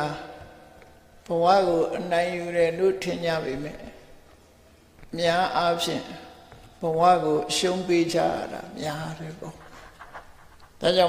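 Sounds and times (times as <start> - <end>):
man preaching: 0.0 - 0.6, 1.3 - 4.0, 5.1 - 10.0, 10.8 - 11.0.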